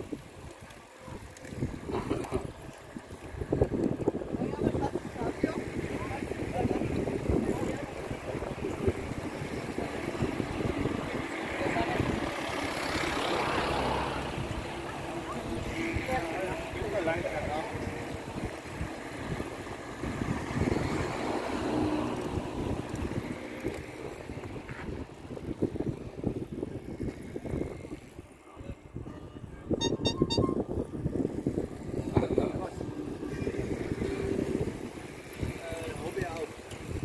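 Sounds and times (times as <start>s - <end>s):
cyclists riding past: 0.0s - 37.0s
riders' voices: 0.0s - 37.0s
wind buffeting microphone: 0.0s - 37.0s
car going by: 0.1s - 37.0s.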